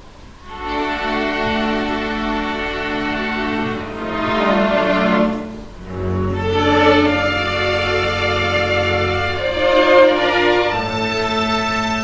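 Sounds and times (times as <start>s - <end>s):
string orchestra bowed notes: 0.4s - 12.0s
low cello and double bass note: 0.5s - 12.0s.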